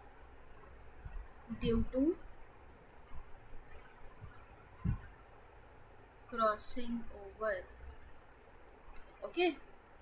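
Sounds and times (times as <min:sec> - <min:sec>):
soft low knocks: 0:00.0 - 0:05.4.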